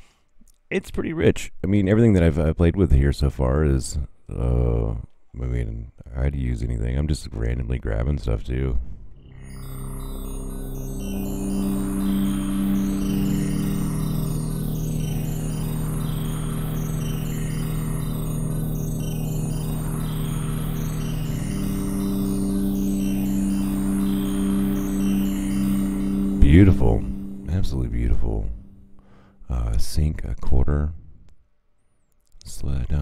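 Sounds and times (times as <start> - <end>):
rising and falling synth sweep: 9.2 - 29.3
high even flicker: 9.2 - 29.4
synthesizer pad chord: 9.2 - 29.4.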